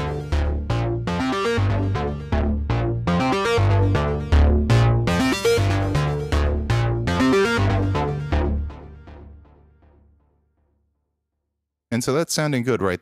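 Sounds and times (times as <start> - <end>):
repeating bass line: 0.0 - 9.8
synthesizer plucked notes: 0.0 - 10.0.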